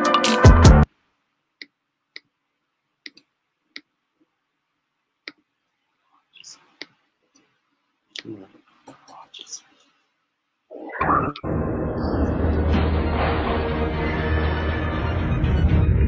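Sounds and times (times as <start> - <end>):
faint quiet talking: 8.2 - 9.8.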